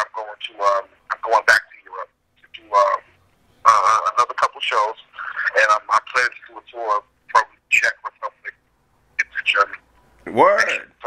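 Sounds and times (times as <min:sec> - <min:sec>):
man talking over telephone: 0:00.0 - 0:08.6, 0:09.2 - 0:11.0.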